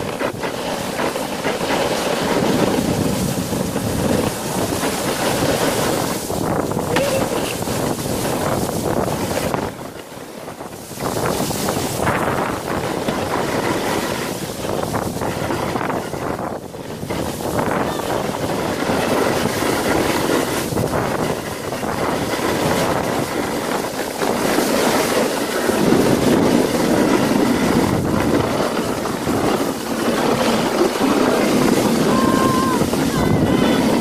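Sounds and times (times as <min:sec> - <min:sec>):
sled scraping on snow: 0:00.0 - 0:34.0
wind buffeting microphone: 0:00.0 - 0:34.0.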